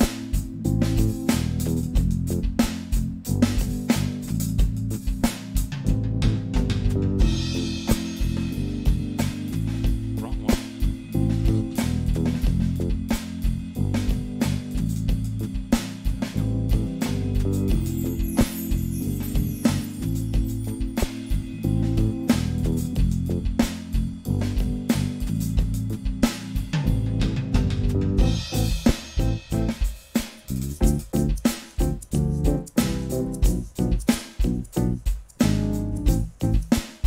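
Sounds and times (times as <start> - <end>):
keyboard bass line: 0.0 - 29.9, 30.5 - 36.8
band music: 0.0 - 37.0
electronic drum beat: 0.0 - 37.0.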